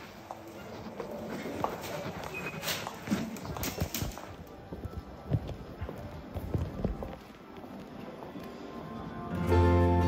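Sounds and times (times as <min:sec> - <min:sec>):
footsteps on a hard floor: 0:00.0 - 0:08.3.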